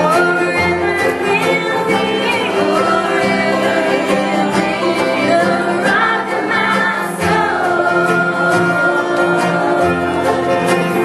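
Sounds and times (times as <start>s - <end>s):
strummed acoustic strings: 0.0s - 11.0s
two women singing together: 0.0s - 11.0s.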